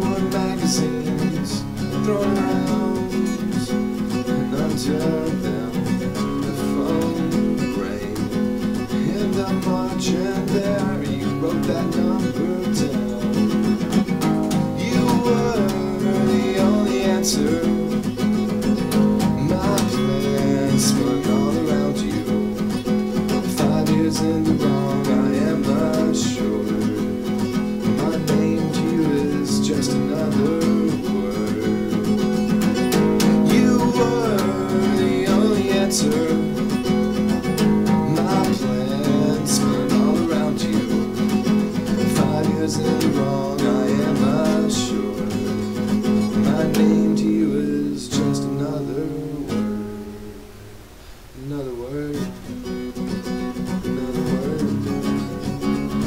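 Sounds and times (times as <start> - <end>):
man singing: 0.0 - 50.2, 51.4 - 56.0
acoustic guitar strumming: 0.0 - 56.0.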